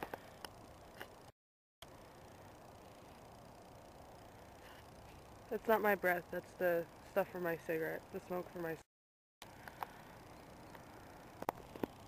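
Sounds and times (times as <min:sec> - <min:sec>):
faint outdoor hiss: 0:00.0 - 0:12.0.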